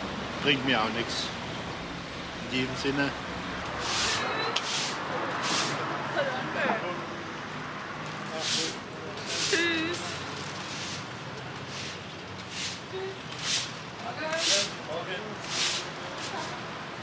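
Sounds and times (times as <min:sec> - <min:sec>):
short hissing bursts: 0:03.8 - 0:05.8, 0:11.7 - 0:13.8, 0:14.4 - 0:14.8, 0:15.4 - 0:16.5.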